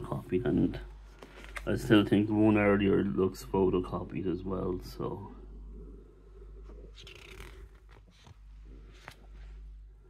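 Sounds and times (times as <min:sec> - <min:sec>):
paper pages rustling: 0:07.0 - 0:09.6.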